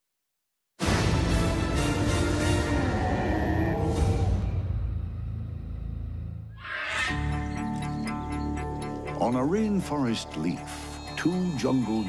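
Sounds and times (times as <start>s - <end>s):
music: 0.8s - 12.0s.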